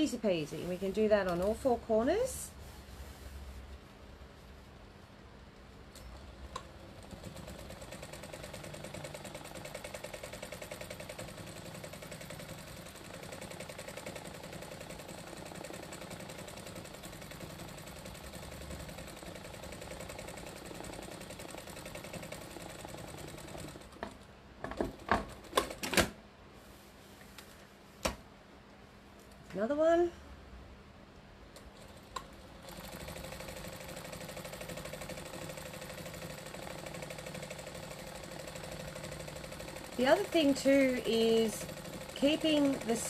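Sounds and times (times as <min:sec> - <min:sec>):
sewing machine stitching: 0:06.1 - 0:24.1, 0:31.6 - 0:43.0.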